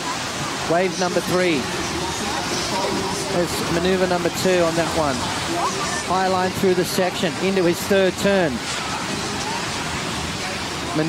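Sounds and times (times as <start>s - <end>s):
ocean surf breaking: 0.0s - 11.0s.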